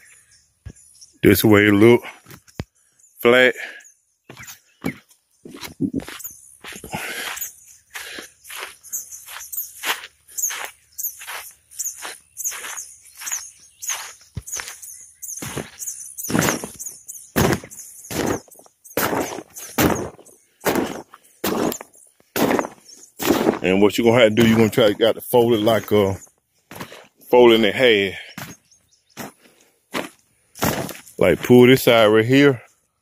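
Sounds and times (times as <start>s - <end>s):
footsteps on vinyl: 8.0s - 16.8s, 17.4s - 23.8s, 29.2s - 31.6s.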